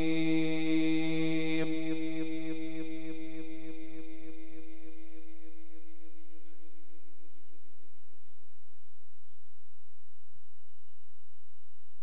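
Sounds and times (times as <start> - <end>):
man reciting through loudspeakers: 0.0 - 5.0
faint high whine: 0.0 - 12.0.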